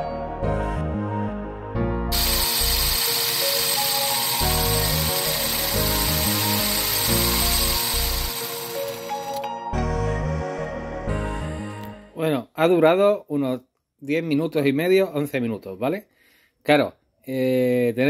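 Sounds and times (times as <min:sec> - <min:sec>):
background music: 0:00.0 - 0:12.4
electric motor whirring: 0:02.1 - 0:09.5.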